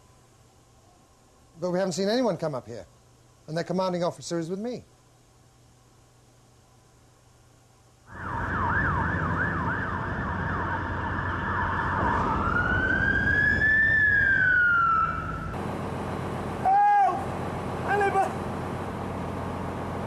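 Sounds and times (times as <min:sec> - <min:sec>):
emergency vehicle siren: 0:08.1 - 0:15.6
vehicle engine running: 0:15.6 - 0:20.0.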